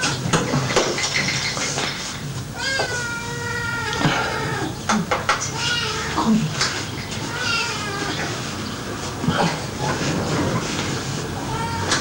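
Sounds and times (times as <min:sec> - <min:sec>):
cat meowing: 0:07.3 - 0:08.2, 0:11.5 - 0:12.0.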